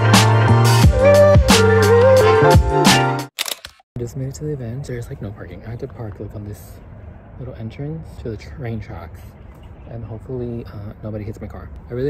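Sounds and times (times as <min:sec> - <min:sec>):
background music: 0:00.0 - 0:03.3
camera shutter clicks: 0:03.4 - 0:03.8
man talking: 0:04.0 - 0:12.0.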